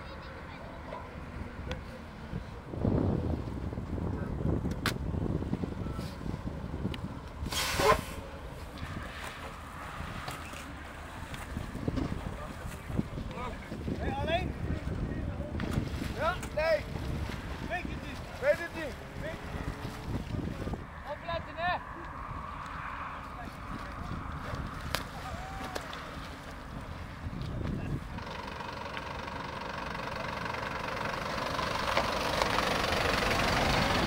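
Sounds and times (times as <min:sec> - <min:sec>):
voices calling: 0:09.5 - 0:34.0.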